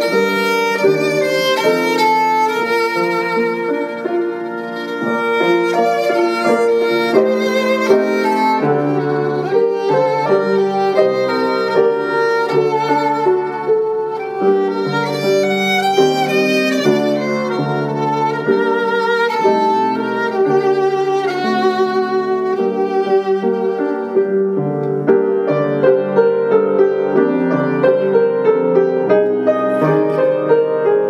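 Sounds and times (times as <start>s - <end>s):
solo violin melody: 0.0s - 31.0s.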